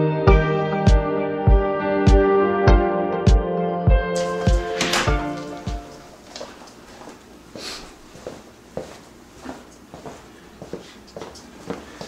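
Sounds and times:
soft footsteps and knocks: 0:04.2 - 0:07.3, 0:08.1 - 0:12.0.

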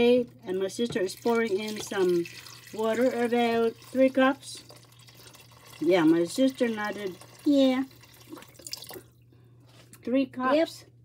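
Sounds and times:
water pouring into a saucepan: 0:01.0 - 0:09.1.

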